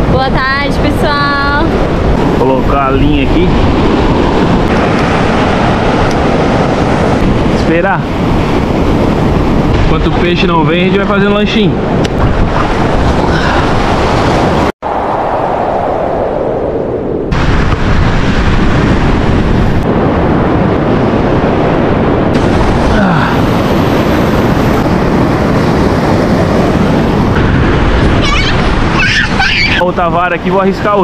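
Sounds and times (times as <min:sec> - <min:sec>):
wind buffeting microphone: 0:00.0 - 0:31.0
surf breaking: 0:01.6 - 0:31.0.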